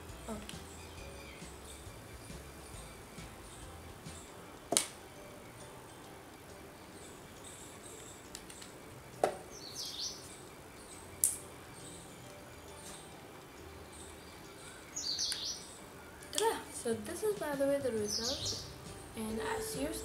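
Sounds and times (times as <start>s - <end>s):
bird chirping: 0.1s - 20.0s
sharp clicks: 11.2s - 11.5s.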